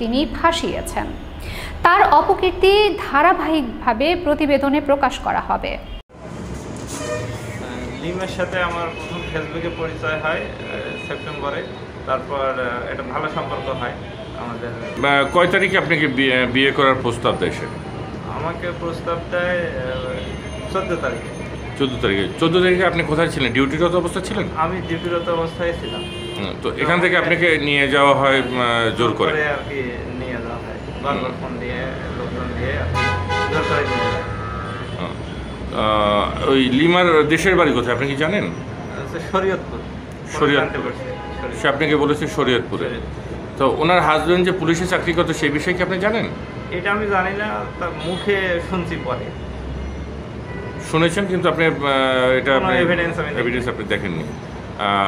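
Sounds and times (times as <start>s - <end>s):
vehicle horn long note: 6.9s - 7.8s, 33.0s - 35.2s
man talking: 7.6s - 21.2s, 21.8s - 34.2s, 35.0s - 49.3s, 50.9s - 55.0s.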